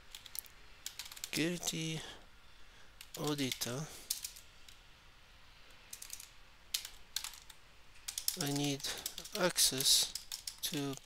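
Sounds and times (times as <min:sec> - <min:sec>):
computer keyboard typing: 0:00.1 - 0:01.4, 0:03.0 - 0:04.4, 0:05.9 - 0:11.0.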